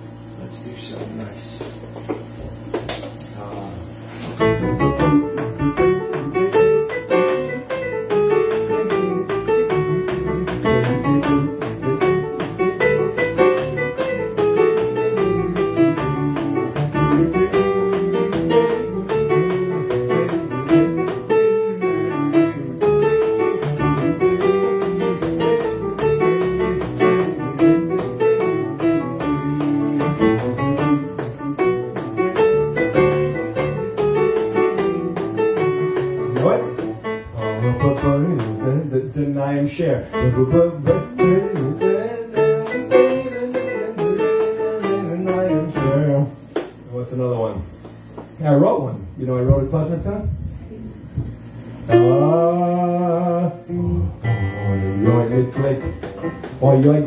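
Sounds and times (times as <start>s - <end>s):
electronic keyboard klezmer tune: 4.4s - 38.8s, 53.7s - 57.0s.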